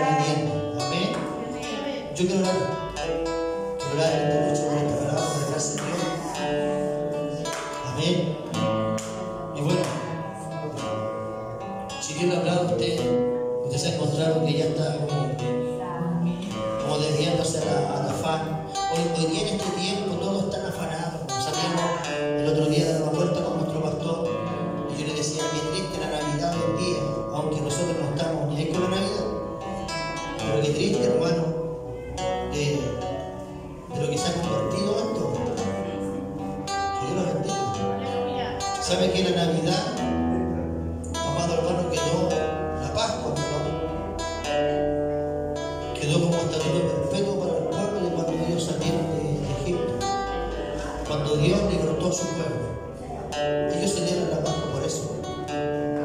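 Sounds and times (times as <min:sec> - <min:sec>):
person's voice: 0:00.0 - 0:02.8, 0:03.8 - 0:06.9
acoustic guitar music: 0:00.0 - 0:56.0.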